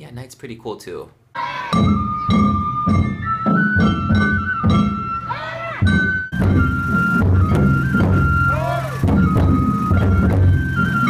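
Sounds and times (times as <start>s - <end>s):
high flute melody: 1.4s - 11.0s
taiko drum beats: 1.7s - 11.0s.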